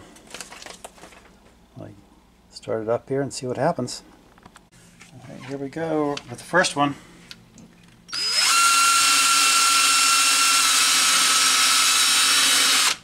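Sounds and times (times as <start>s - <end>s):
cordless drill sanding plastic: 8.1s - 13.0s.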